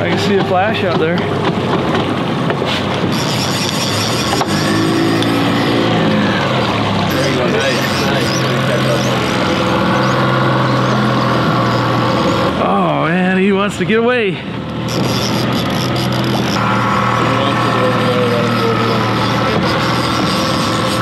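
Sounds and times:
boat motor running: 0.0 - 21.0
water noise: 0.0 - 21.0
wind: 0.0 - 21.0.

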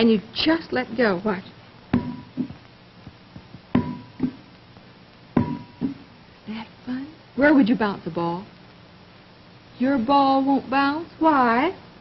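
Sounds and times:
rubber ball bouncing on floor: 1.9 - 4.5, 5.4 - 6.1.

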